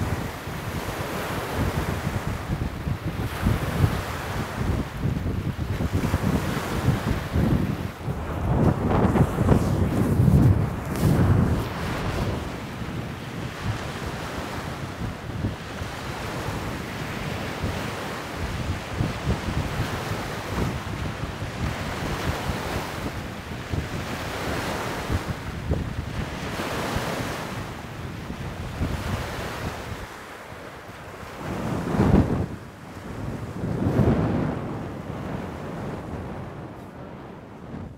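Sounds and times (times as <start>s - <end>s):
waves lapping on shore: 0.0s - 37.9s
wind buffeting microphone: 0.0s - 37.9s.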